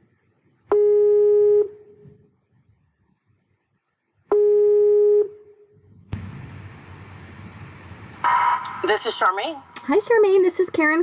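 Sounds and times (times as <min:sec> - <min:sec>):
telephone line hiss: 0:08.2 - 0:09.4.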